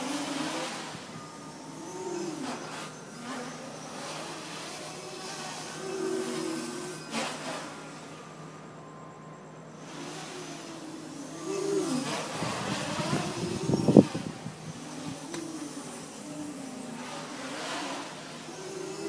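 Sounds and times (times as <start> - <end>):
quadcopter motors whining: 0.0 - 19.0
rough rumbling on microphone: 12.1 - 15.8.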